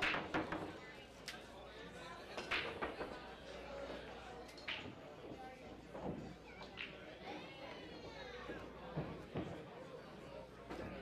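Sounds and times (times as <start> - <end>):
bar chatter: 0.0 - 11.0.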